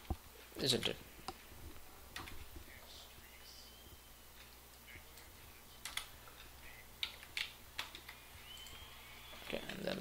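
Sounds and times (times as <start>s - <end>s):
computer keyboard clicks: 5.2s - 6.1s, 7.0s - 8.8s.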